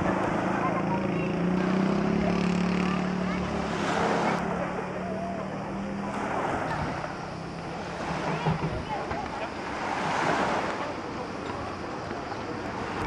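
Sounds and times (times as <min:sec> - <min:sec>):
distant voices: 0:00.0 - 0:13.0
engine humming: 0:00.0 - 0:13.0
waves: 0:00.0 - 0:13.0
wind: 0:00.0 - 0:13.0.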